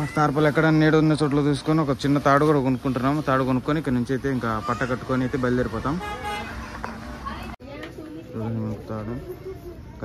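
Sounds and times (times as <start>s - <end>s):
street traffic noise: 0.0s - 10.0s
vehicle horn: 6.0s - 6.6s.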